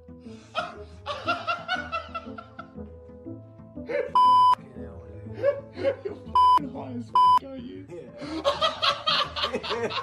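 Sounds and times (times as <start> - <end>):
background music: 0.0 - 10.0
high censor bleep: 4.2 - 4.6.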